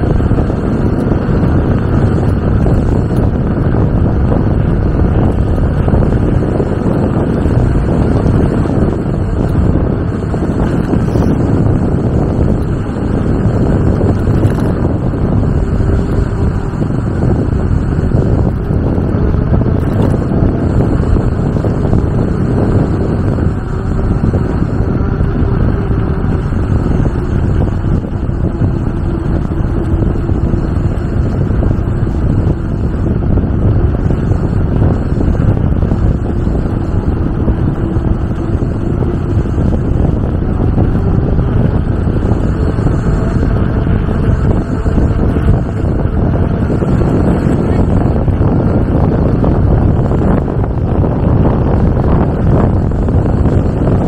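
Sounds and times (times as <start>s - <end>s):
wind buffeting microphone: 0.0s - 54.0s.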